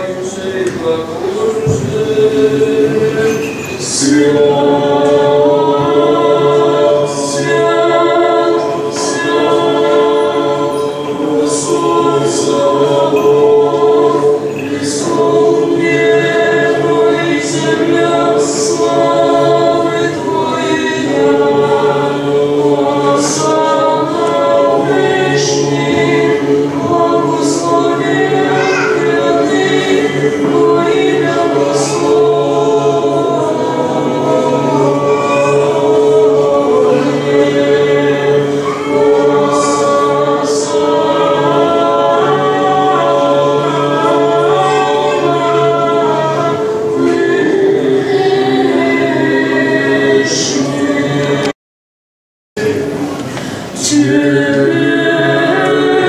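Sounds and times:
choir chanting unaccompanied: 0.0 - 51.6, 52.6 - 56.0
low held vocal drone: 0.0 - 51.6, 52.6 - 56.0.

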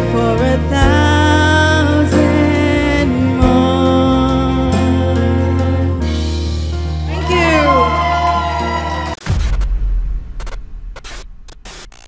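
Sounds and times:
deep boom: 9.2 - 11.5
crackling static bursts: 9.2 - 12.0.

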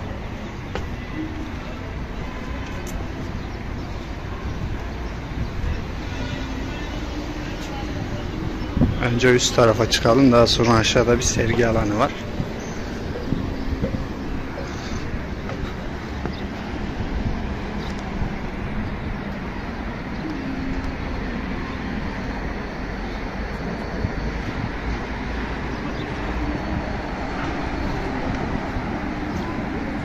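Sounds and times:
road traffic noise: 0.0 - 30.0
wind on microphone: 3.0 - 9.2, 11.2 - 21.6, 23.0 - 30.0.

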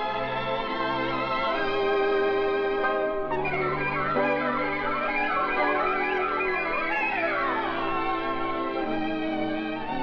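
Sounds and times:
band playing sustained chords: 2.8 - 9.6.

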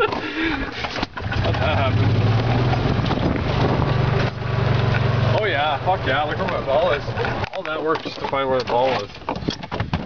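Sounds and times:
golf cart driving: 0.0 - 10.0
wind buffeting microphone: 2.7 - 4.3.

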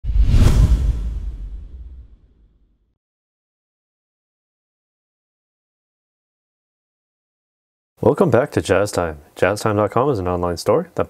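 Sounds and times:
deep low rumble: 0.0 - 2.4
rushing whoosh: 0.0 - 2.4.

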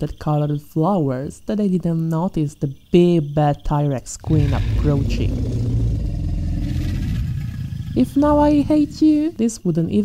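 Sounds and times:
low rumbling dinosaur growl: 4.2 - 9.3.

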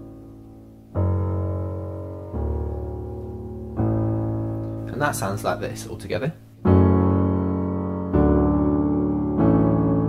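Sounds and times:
low digital piano notes: 0.0 - 10.0.

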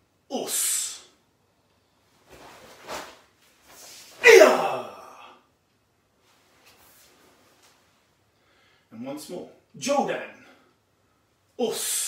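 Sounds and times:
man shouting: 0.3 - 1.0, 4.2 - 5.4, 11.6 - 12.0.

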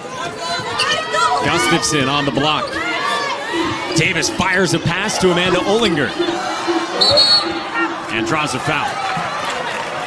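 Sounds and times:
arena crowd noise: 0.0 - 10.0
referee's whistle blast: 7.0 - 7.6.

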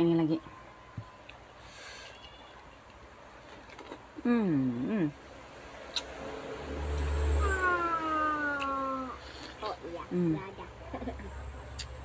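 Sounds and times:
person humming while eating: 7.4 - 9.3.

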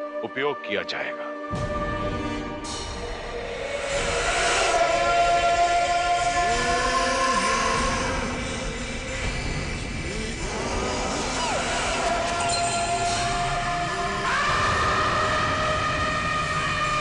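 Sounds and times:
dramatic score of held notes: 0.0 - 17.0.

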